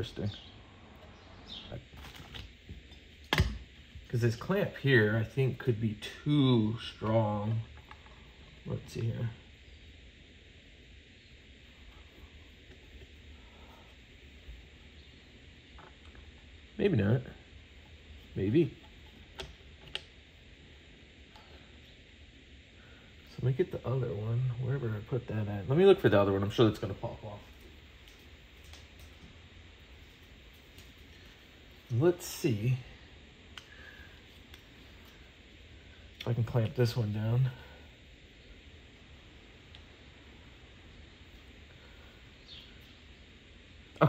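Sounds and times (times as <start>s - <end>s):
low background noise: 0.0s - 44.0s.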